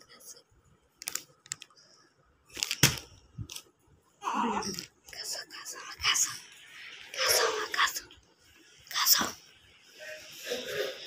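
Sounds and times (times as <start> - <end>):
person whispering: 0.0 - 0.5, 4.3 - 8.2, 8.9 - 11.0.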